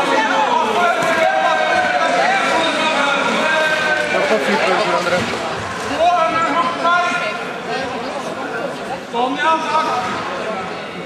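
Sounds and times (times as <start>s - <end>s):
loud shout: 0.0s - 4.3s
crowd murmur: 0.0s - 11.0s
people calling out and talking: 0.0s - 11.0s.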